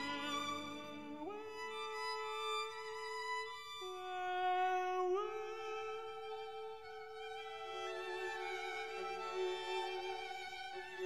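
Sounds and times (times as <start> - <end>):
bowed strings playing slow notes: 0.0 - 11.0.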